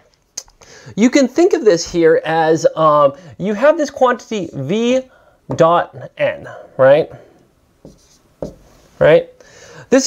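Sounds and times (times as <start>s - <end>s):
marker writing on whiteboard: 7.8s - 8.8s.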